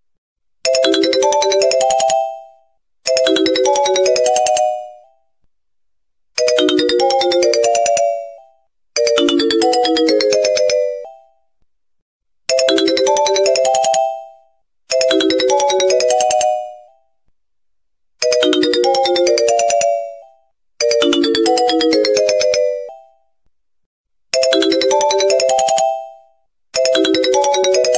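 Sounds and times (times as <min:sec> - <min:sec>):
electronic ringtone melody: 0:00.7 - 0:05.2, 0:06.4 - 0:11.4, 0:12.5 - 0:17.0, 0:18.2 - 0:23.2, 0:24.4 - 0:27.9.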